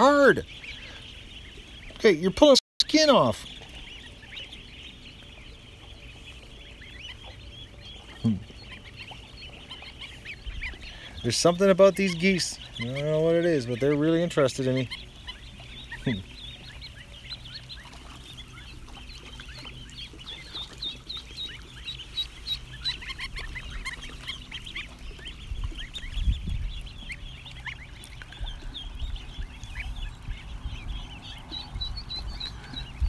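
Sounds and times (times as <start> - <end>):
ducklings and goslings peeping: 0.0 - 33.0.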